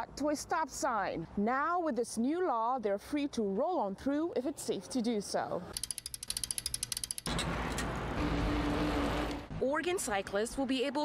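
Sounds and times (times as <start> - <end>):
bicycle freewheel clicking: 5.7 - 7.4.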